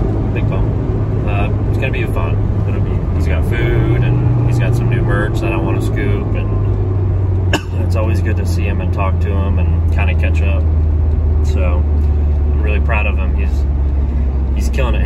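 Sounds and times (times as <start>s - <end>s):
car engine and road drone: 0.0s - 15.0s
man talking: 0.4s - 6.7s, 7.8s - 10.7s, 11.5s - 11.9s, 12.5s - 13.6s, 14.6s - 15.0s.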